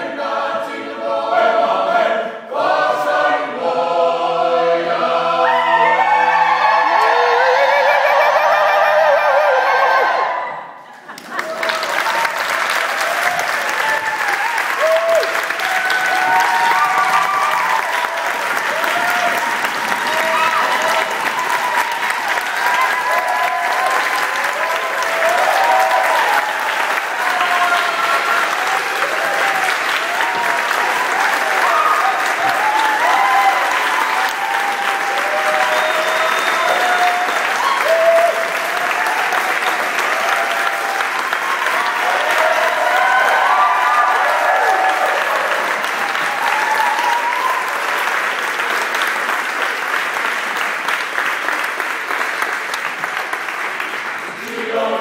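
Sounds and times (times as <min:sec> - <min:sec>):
crowd calling out and whooping: 0:05.4 - 0:48.0
audience applauding: 0:05.7 - 0:55.0.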